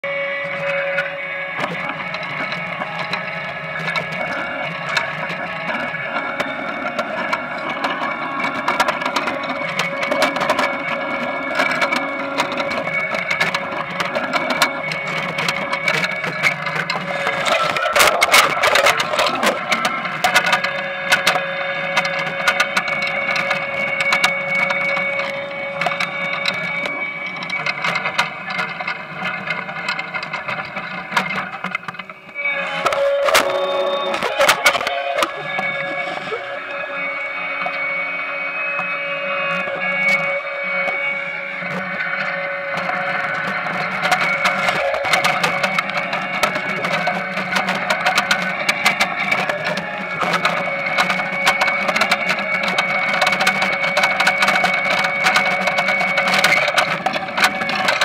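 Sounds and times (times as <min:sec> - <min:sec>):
harvester mechanical drone and whine: 0:00.0 - 0:58.0
potatoes tumbling on conveyor: 0:41.7 - 0:58.0.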